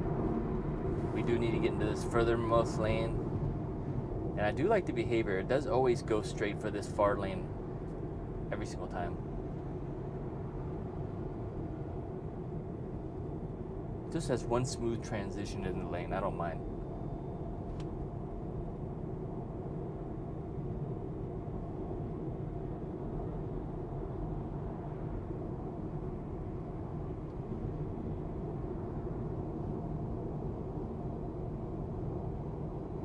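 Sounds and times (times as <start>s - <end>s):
road and tyre noise in car cabin: 0.0s - 33.0s.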